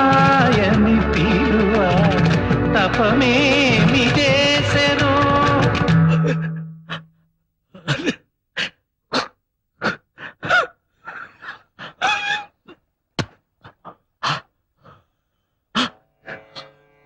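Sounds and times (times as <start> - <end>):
person gasping and straining: 6.0 - 16.0.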